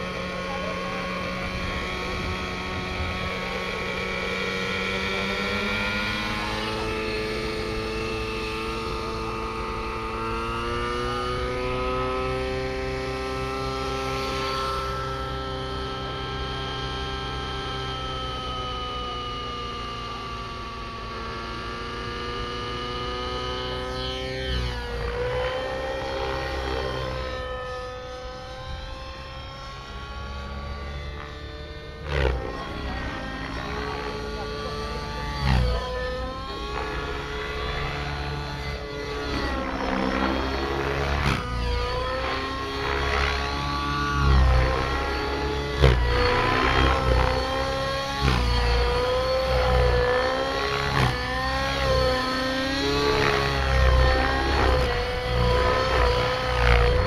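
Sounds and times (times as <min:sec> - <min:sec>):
model helicopter engine whining: 0:00.0 - 0:57.0.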